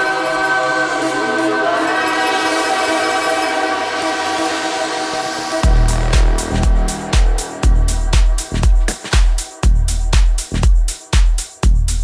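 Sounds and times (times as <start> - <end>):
sustained horn-like synth chord: 2.8 - 8.9.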